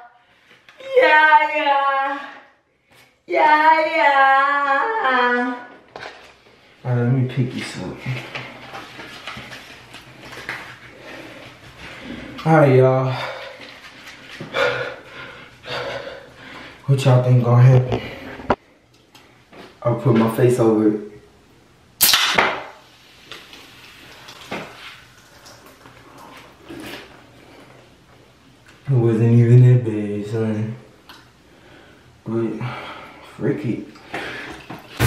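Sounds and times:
soda can pull-tab snapping open: 22.0 - 22.5.

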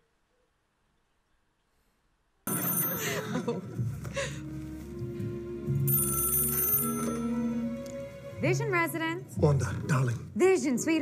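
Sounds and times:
telephone bell ringing: 2.5 - 3.8, 5.9 - 7.6
soft background music: 2.5 - 11.0.

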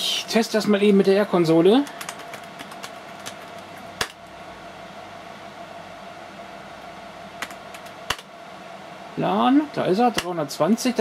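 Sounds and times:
computer fans humming: 0.0 - 11.0
keyboard key presses: 1.8 - 4.2, 7.4 - 8.3.

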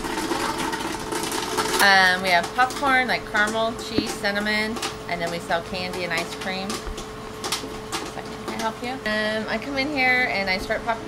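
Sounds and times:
steady machine hum: 0.0 - 11.0
woman speaking: 1.8 - 6.8, 8.2 - 11.0.

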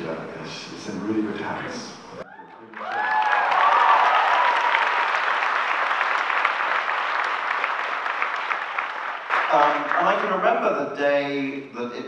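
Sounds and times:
cheers and whoops: 2.2 - 5.5
audience clapping: 2.6 - 10.6.

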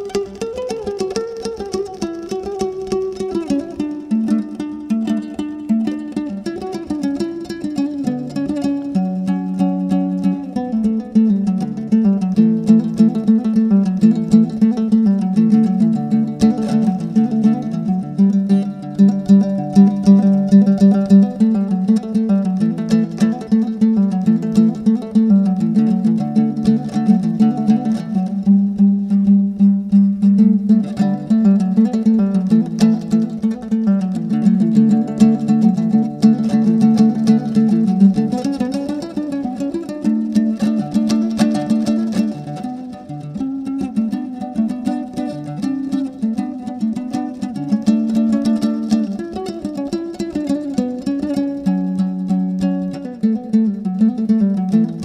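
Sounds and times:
strummed lute melody: 0.0 - 55.0.

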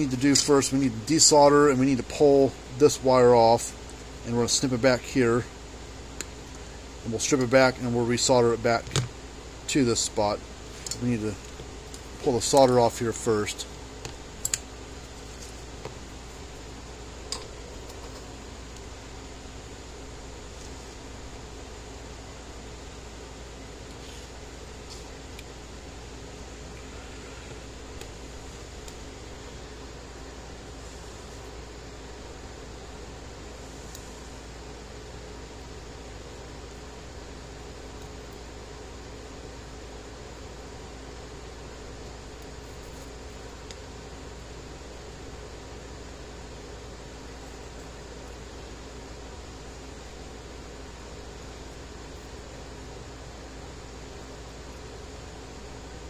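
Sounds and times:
fan humming and hissing: 0.0 - 56.0.

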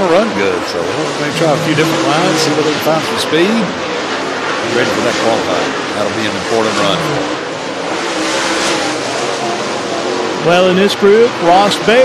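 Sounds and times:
race car engines at speed: 0.0 - 12.0.

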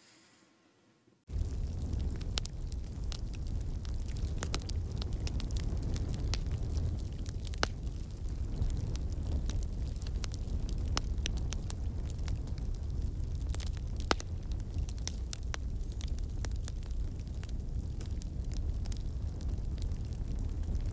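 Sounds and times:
crackles and pops: 1.3 - 20.9
steady low rumble: 1.3 - 20.9.

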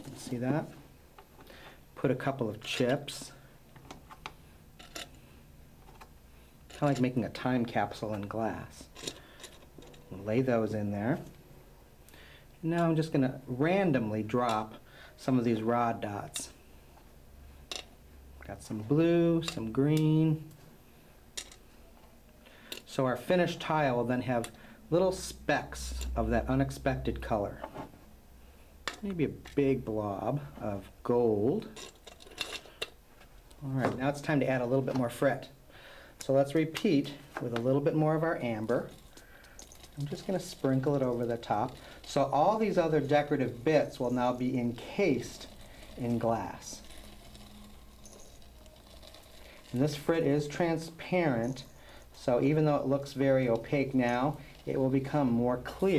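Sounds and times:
glass frit pattering into mold: 38.8 - 50.6.

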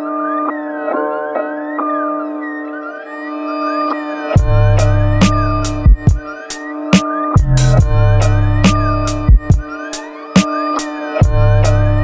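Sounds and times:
hip-hop keyboard chords: 0.0 - 12.0.

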